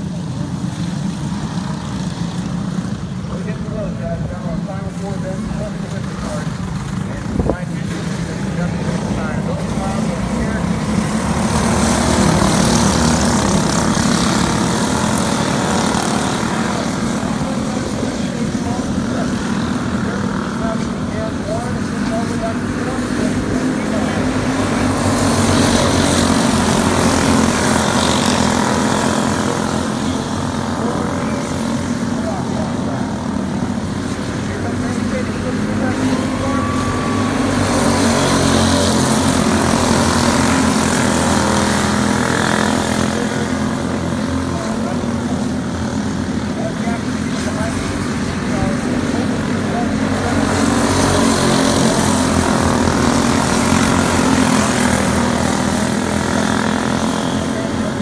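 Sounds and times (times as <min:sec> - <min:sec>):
karts racing engines buzzing: 0:00.0 - 0:58.0.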